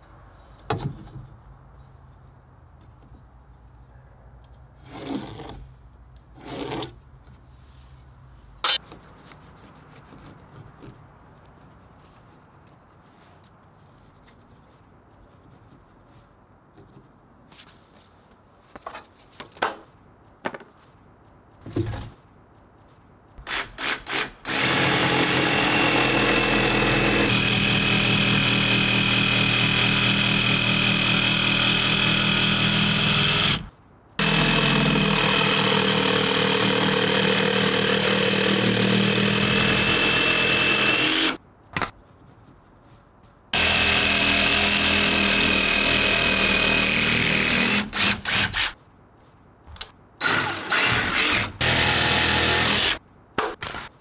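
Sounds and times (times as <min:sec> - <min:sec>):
jigsaw cutting wood: 0:23.5 - 0:41.4, 0:43.6 - 0:48.8, 0:50.2 - 0:53.0.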